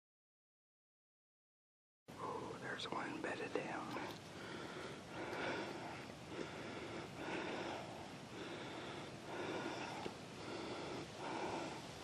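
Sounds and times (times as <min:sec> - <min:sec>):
person whispering: 0:02.1 - 0:04.2.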